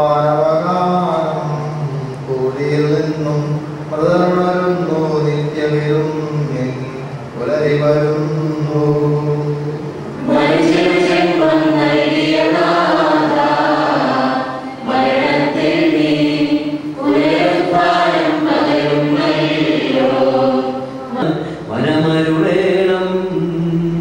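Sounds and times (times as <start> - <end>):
group singing a chant: 0.0 - 24.0.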